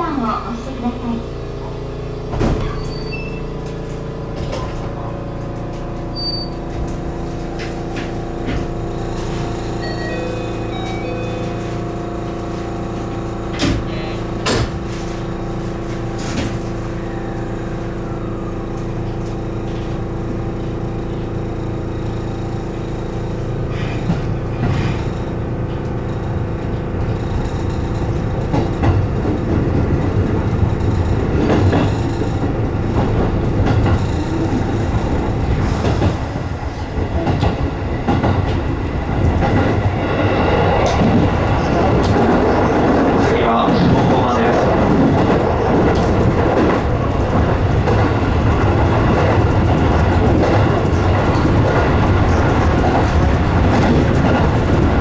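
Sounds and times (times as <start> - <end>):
electric train hum: 0.0 - 55.0
wheels clattering on rail: 1.6 - 18.1, 18.7 - 55.0.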